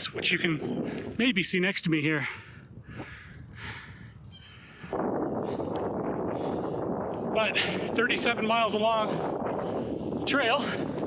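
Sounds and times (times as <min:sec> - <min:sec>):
wind rushing over microphone: 0:00.0 - 0:11.0.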